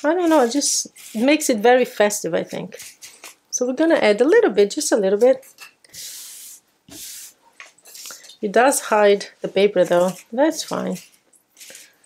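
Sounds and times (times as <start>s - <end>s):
paper shreds swept across plastic mat: 0.0s - 1.5s.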